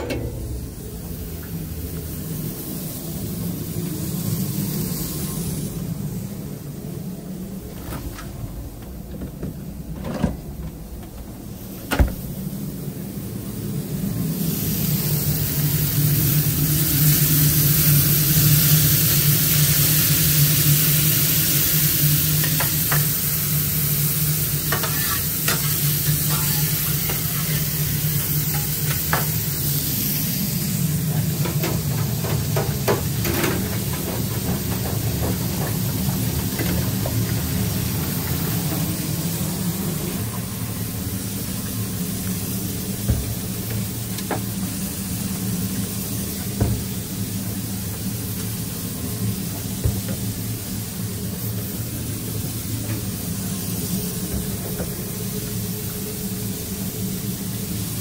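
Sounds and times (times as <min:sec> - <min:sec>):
fries in deep fryer: 0:00.0 - 0:08.8, 0:11.4 - 0:58.0
steady low hum: 0:00.0 - 0:16.6
patties sizzling on griddle: 0:13.6 - 0:40.0, 0:40.8 - 0:58.0.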